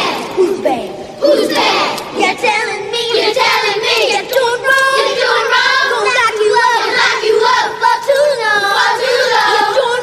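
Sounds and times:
group singing held notes: 0.0 - 0.6, 1.2 - 10.0.

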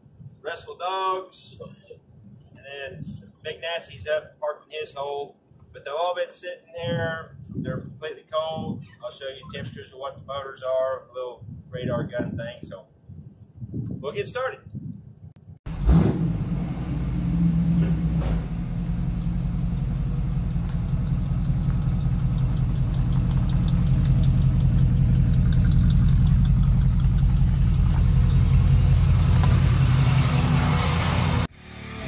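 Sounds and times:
truck engine running: 15.7 - 31.5.

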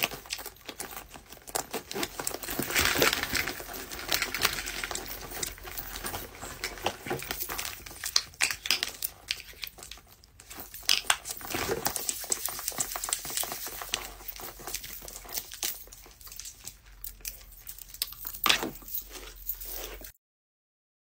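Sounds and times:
fabric pouch crinkling: 0.0 - 20.1.

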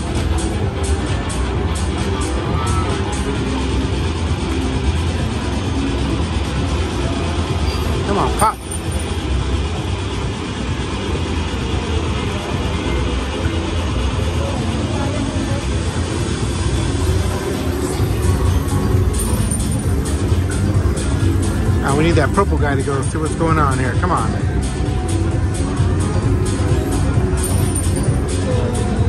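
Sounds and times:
background chatter: 0.0 - 29.0
steady low rumble: 0.0 - 29.0
slot machine game sounds: 7.7 - 9.6, 17.0 - 23.9, 25.5 - 28.8.

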